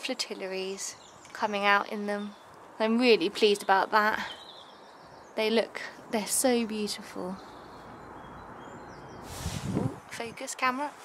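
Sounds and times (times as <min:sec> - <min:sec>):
rush of noise on microphone: 0:09.2 - 0:10.5.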